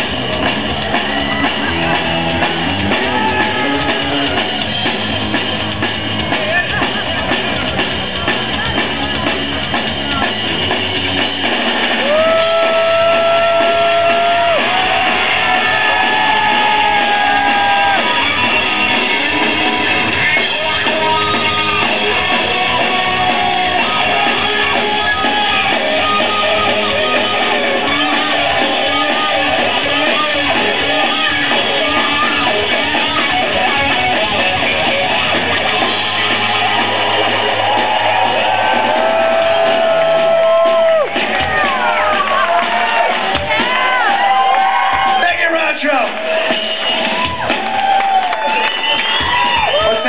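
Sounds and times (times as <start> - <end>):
live rock band playing: 0.0 - 50.0.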